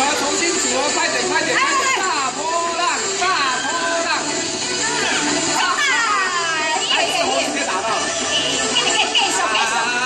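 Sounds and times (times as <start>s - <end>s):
music: 0.0s - 10.0s
voices calling out: 1.5s - 10.0s.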